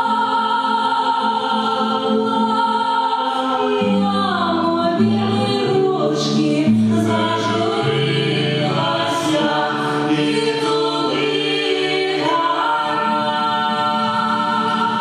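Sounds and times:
acoustic guitar: 0.0 - 15.0
voices singing in harmony: 0.0 - 15.0.

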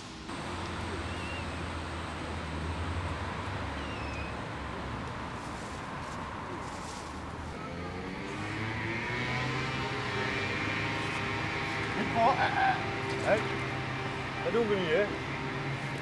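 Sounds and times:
vehicle engine running: 0.0 - 16.0
voices calling out: 0.3 - 5.1, 6.3 - 16.0.

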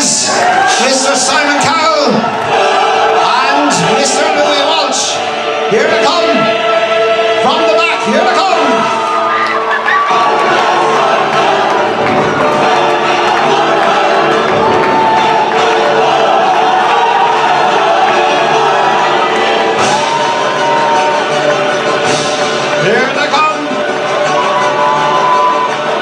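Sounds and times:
audience cheering: 0.0 - 26.0
entrance music: 0.0 - 26.0.

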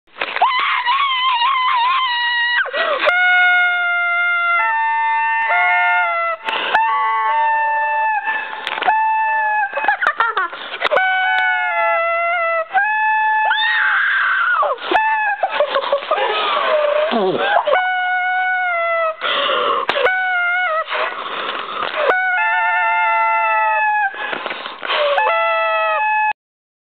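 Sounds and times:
long high-pitched screams: 0.4 - 10.0, 10.9 - 15.6, 22.0 - 24.3, 24.9 - 26.4
gasping breaths: 2.7 - 3.1, 8.2 - 8.9, 19.2 - 20.0, 20.8 - 22.1, 24.0 - 25.2.

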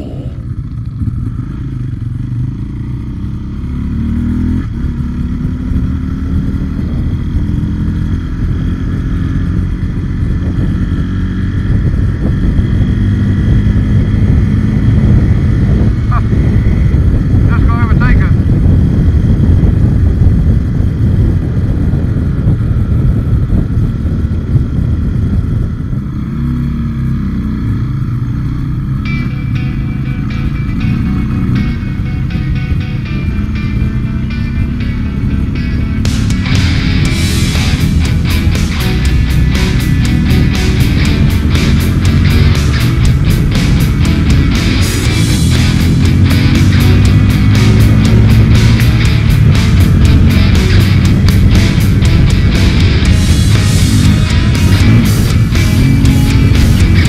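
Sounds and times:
wind rumble on microphone: 0.0 - 2.1, 4.2 - 57.0
motorcycle engine revving: 0.0 - 57.0.

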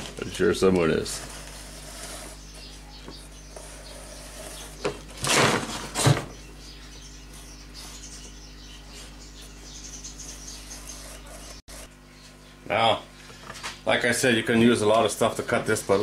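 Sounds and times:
marker squeaking and scratching: 1.3 - 4.8, 9.6 - 11.9
garbage can scraping and thumping: 4.8 - 6.4.

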